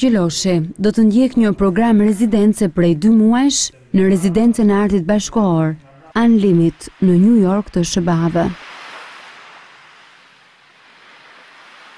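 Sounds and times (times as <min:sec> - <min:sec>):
sea waves washing on beach: 0:06.2 - 0:11.9.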